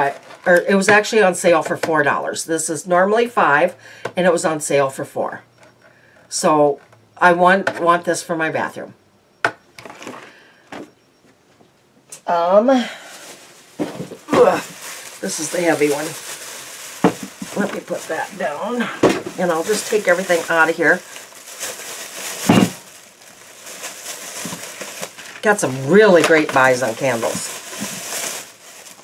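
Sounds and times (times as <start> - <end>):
plastic bag rustling: 0.0 - 0.9, 12.9 - 29.0
soft rustling of handling: 13.0 - 18.6
cardboard box knocking down: 13.8 - 14.6.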